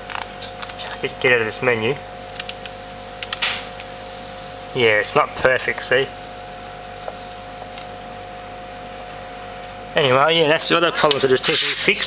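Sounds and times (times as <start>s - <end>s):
two-note electrical hum: 0.0s - 12.0s.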